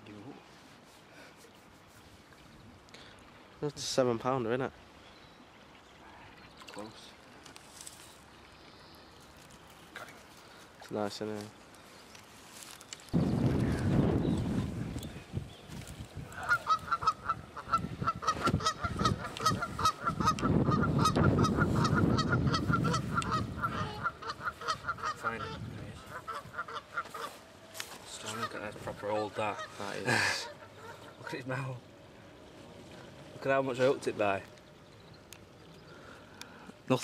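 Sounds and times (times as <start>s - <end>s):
rustling: 11.3s - 13.7s
geese honking: 16.4s - 27.5s, 28.1s - 32.2s.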